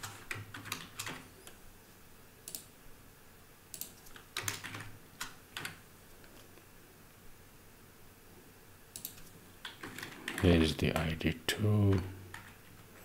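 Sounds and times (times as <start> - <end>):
keyboard keys clicking: 0.0 - 1.2, 3.8 - 5.8.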